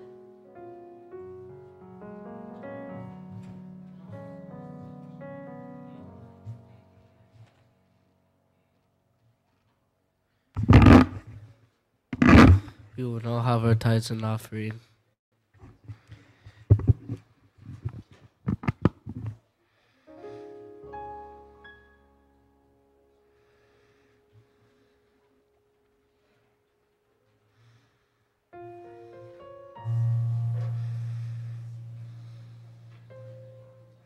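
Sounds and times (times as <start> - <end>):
keyboard bass note and chord: 29.8 - 34.0
low muffled noise: 29.8 - 34.0.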